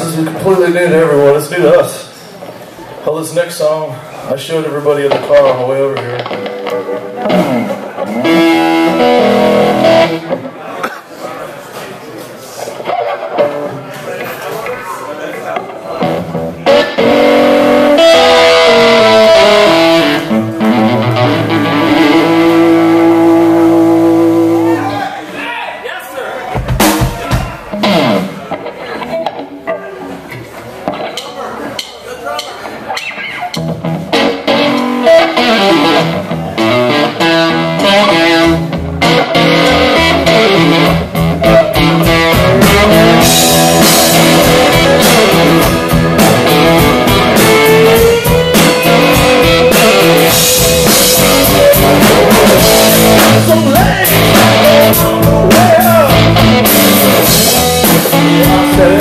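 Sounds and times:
amplified electric guitar: 5.1 - 10.6, 12.8 - 13.8, 15.6 - 25.1, 26.7 - 30.0, 32.9 - 59.0.

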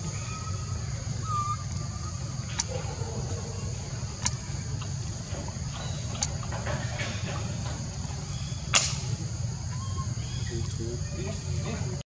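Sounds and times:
sharp click: 8.7 - 9.0.

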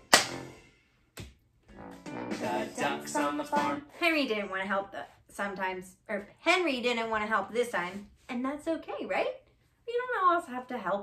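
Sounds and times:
final clap and chord: 0.0 - 0.6.

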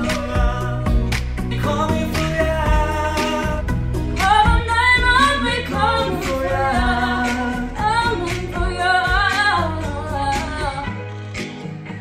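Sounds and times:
woman and man singing pop duet: 0.0 - 11.1
pop backing track with beat: 0.0 - 12.0.

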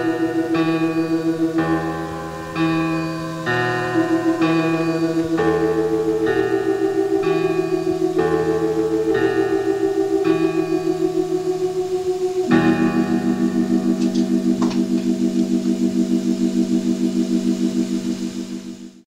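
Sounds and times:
organ-like synthesizer chords: 0.0 - 19.0.

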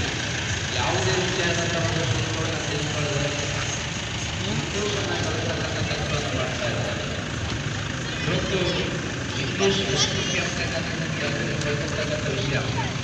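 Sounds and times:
vehicle engine idling: 0.0 - 13.0
people talking quietly: 0.7 - 13.0.

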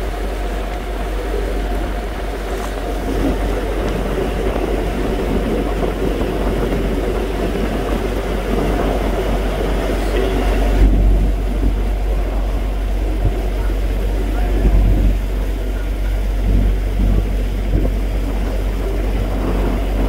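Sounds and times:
boat motor running: 0.0 - 20.0
water rushing: 0.0 - 20.0
wind noise: 0.0 - 20.0.

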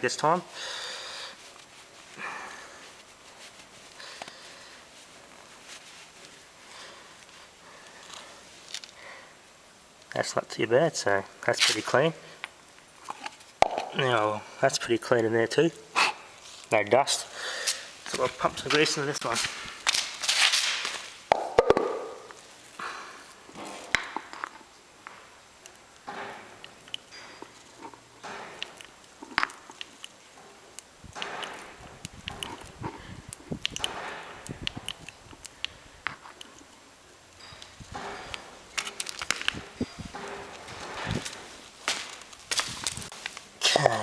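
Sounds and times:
grease gun pumping clicks: 30.8 - 36.7.

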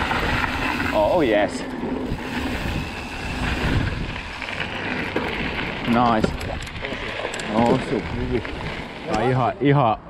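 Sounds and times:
wind buffeting microphone: 0.0 - 9.6
bike tyres rumbling over dirt: 0.0 - 9.7.

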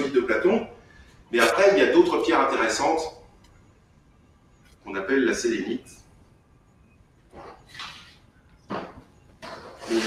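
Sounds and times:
objects scraping on a table: 7.3 - 10.0.

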